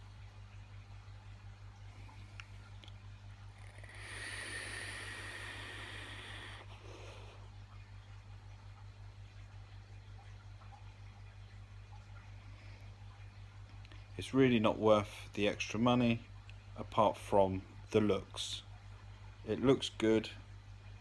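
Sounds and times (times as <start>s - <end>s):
steady low hum: 0.0s - 21.0s
soft breath out: 3.6s - 7.5s
airy hiss of vape draw: 3.7s - 6.6s.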